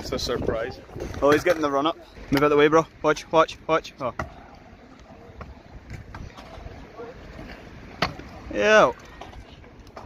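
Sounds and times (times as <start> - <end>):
wind buffeting microphone: 0.0 - 1.6.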